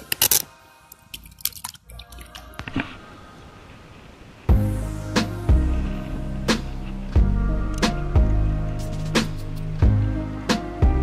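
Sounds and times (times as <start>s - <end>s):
background music with held tones: 4.5s - 11.0s.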